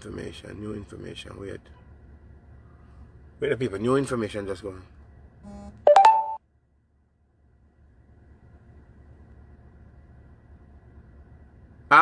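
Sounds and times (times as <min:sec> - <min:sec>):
short electronic beep: 0:05.5 - 0:06.4.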